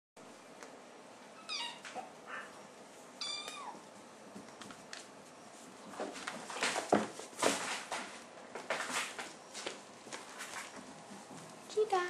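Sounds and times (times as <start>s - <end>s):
cat meowing: 1.4s - 2.5s, 3.2s - 3.8s.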